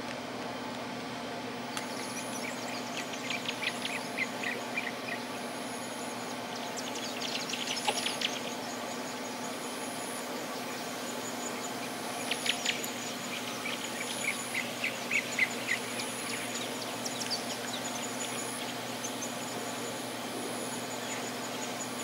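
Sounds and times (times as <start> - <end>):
steady low hum: 0.0 - 22.0
birds chirping: 1.6 - 22.0.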